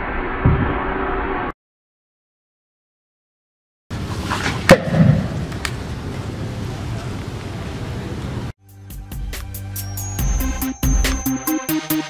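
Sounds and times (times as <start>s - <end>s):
outdoor background noise: 3.9s - 8.6s
launcher sharp crack: 4.2s - 5.8s
electronic music: 8.6s - 12.0s.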